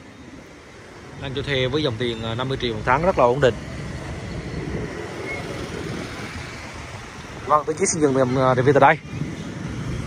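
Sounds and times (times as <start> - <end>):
cars and motorbikes passing: 0.0 - 10.0.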